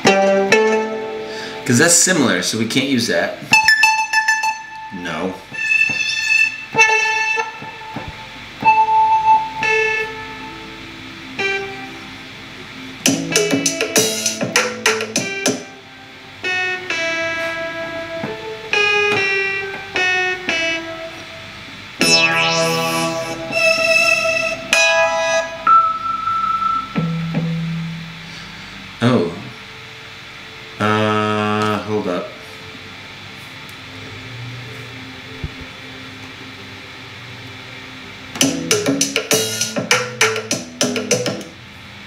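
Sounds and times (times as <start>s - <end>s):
synthesizer notes: 3.4s - 15.8s, 16.4s - 28.6s
rising synth sweep: 21.3s - 27.0s
low synth bass note: 22.0s - 25.6s.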